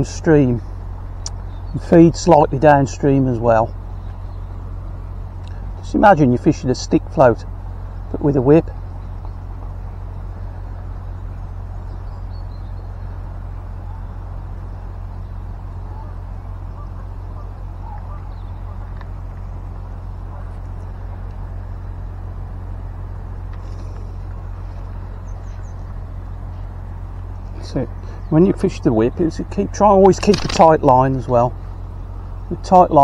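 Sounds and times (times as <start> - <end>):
low outdoor rumble: 0.0 - 33.0.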